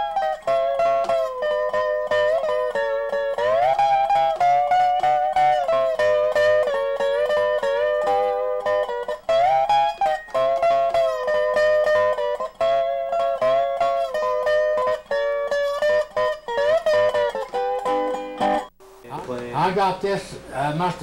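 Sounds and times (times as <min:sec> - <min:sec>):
resonator guitar with slides: 0:00.0 - 0:21.0
man talking: 0:19.0 - 0:21.0.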